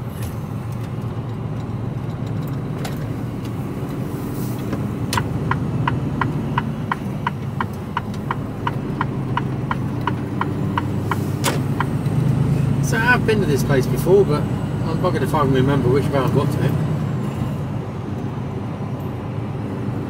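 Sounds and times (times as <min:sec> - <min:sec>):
diesel engine running: 0:00.0 - 0:20.0
turn indicator relay ticking: 0:05.1 - 0:12.2.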